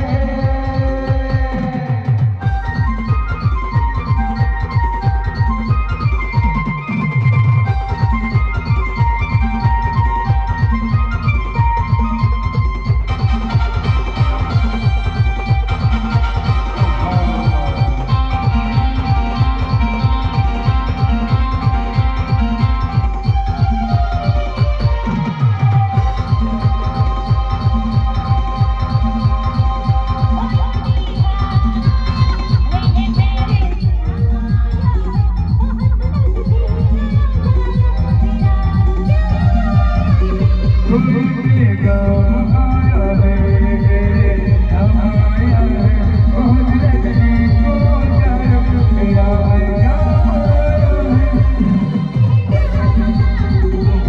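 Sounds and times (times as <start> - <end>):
fast heavy bass drum beat: 0.0 - 6.6, 7.7 - 54.0
live band music: 0.0 - 35.4, 36.1 - 54.0.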